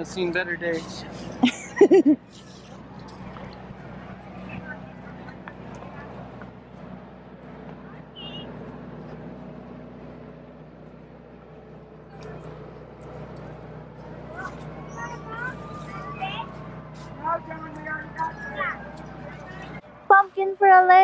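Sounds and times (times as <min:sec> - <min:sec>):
low motor hum: 0:00.0 - 0:21.0
faint distant voices: 0:02.3 - 0:09.8.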